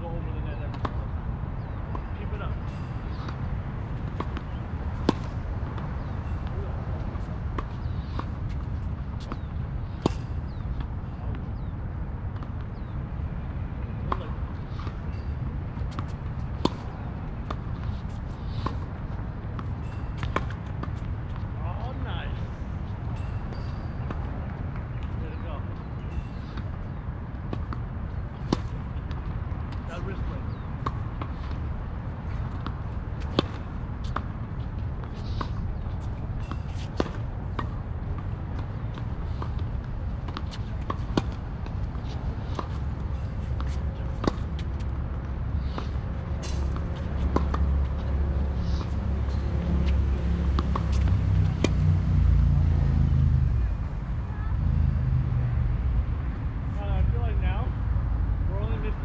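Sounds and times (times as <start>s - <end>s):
tennis balls struck by racquets: 0.6s - 11.7s, 14.0s - 53.4s.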